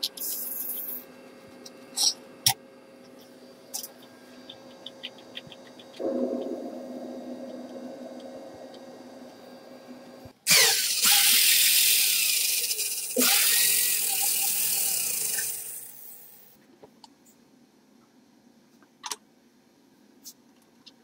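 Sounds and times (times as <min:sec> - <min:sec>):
electric drill running: 0:10.5 - 0:16.3.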